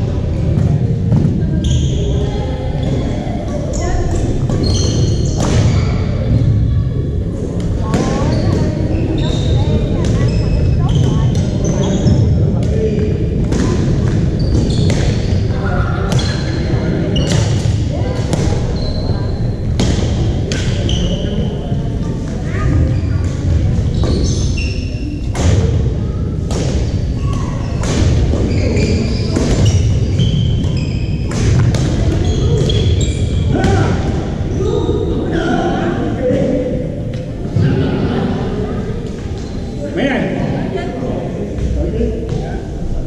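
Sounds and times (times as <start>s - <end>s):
echoing voices in hall: 0.0s - 43.0s
sneaker squeaks on hardwood: 1.6s - 2.2s, 4.5s - 6.2s, 8.0s - 12.3s, 14.2s - 15.4s, 16.1s - 17.6s, 18.4s - 19.7s, 22.8s - 25.2s, 26.7s - 33.7s.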